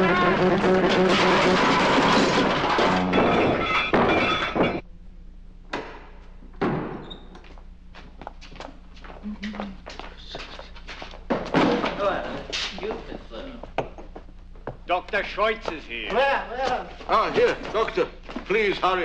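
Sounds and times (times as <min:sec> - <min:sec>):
wooden drawbridge clattering down: 0:00.0 - 0:04.8
low hum: 0:00.0 - 0:06.6.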